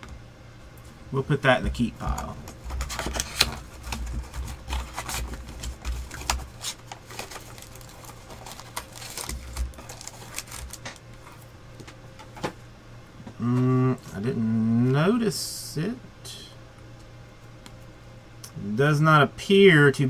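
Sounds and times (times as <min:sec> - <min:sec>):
foil packs crinkling and tearing: 0:02.2 - 0:11.1.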